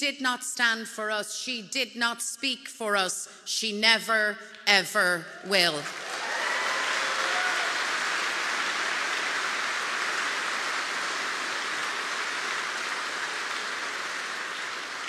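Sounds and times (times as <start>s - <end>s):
audience applauding: 5.8s - 15.0s.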